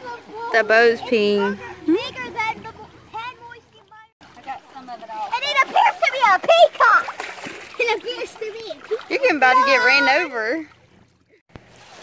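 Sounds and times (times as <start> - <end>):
water splashing: 0.0 - 12.0
child's wordless voice: 1.4 - 4.1, 7.8 - 10.0.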